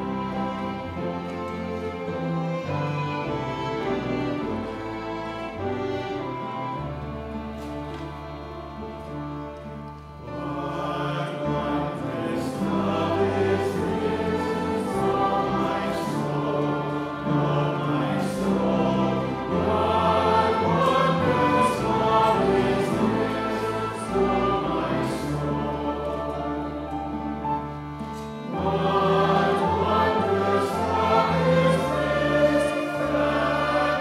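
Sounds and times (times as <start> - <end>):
piano and instrumental accompaniment: 0.0 - 34.0
group singing a hymn: 10.2 - 34.0.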